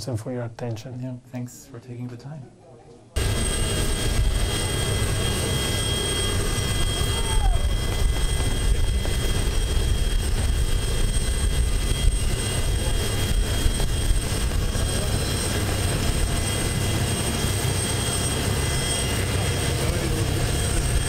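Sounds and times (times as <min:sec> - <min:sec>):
jet turbine rumble and whine: 0:03.2 - 0:21.0.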